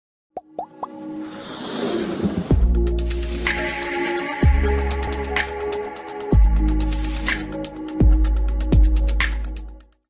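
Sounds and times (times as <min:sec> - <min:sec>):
whooshing swell: 0:01.0 - 0:04.2.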